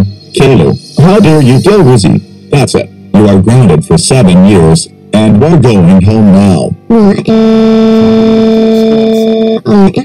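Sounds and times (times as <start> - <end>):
loud steady held tone: 0.0 - 5.8, 6.4 - 10.0.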